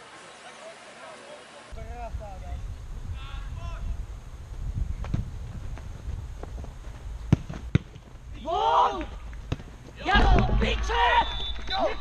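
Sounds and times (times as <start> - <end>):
football kicks thudding: 7.3 - 8.1, 9.0 - 10.6
players shouting: 8.4 - 9.2, 10.0 - 12.0.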